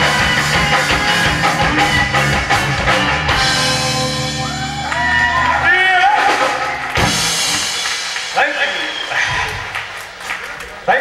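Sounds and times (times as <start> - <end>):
live band final hit: 0.0 - 10.9.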